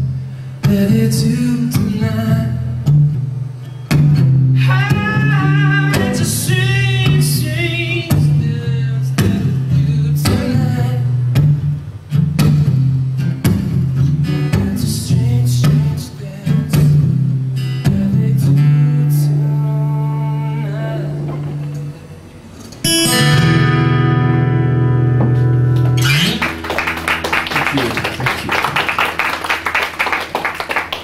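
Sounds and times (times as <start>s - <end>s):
acoustic guitar strumming chords: 0.0s - 30.0s.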